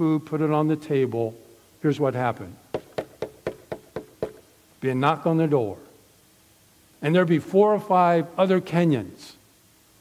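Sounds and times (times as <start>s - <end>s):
knuckles knocking on lectern: 2.7s - 4.5s.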